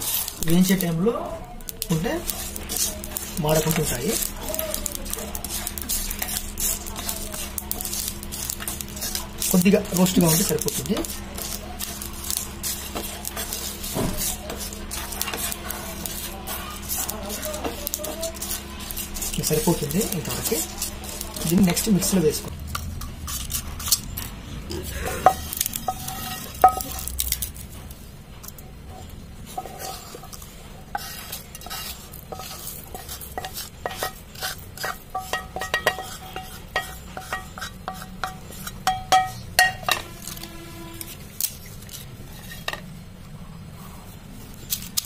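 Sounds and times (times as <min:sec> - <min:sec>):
light sizzle: 0:00.0 - 0:45.0
spices scraping and rattling in pan: 0:00.0 - 0:45.0
pan ringing: 0:38.2 - 0:41.0.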